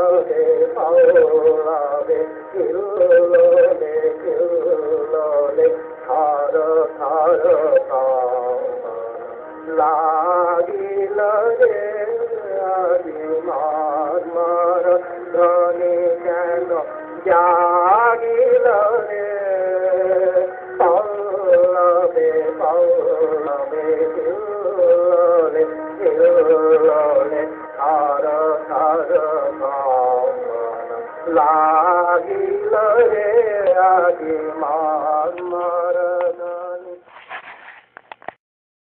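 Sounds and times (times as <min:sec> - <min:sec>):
person singing ornamented melody: 0:00.0 - 0:37.1
background music: 0:00.0 - 0:37.2.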